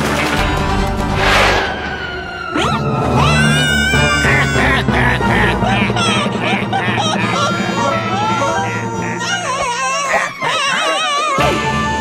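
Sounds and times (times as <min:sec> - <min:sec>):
cartoon background music: 0:00.0 - 0:12.0
cartoon creature crying and yelping: 0:02.6 - 0:12.0.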